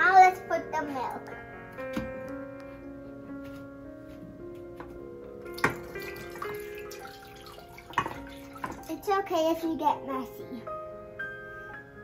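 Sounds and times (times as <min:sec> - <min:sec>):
background music: 0:00.0 - 0:12.0
milk pouring into saucepan: 0:05.5 - 0:09.1.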